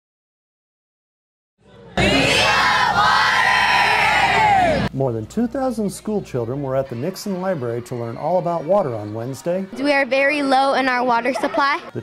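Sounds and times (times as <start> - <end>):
children shouting and cheering: 1.6 - 4.9.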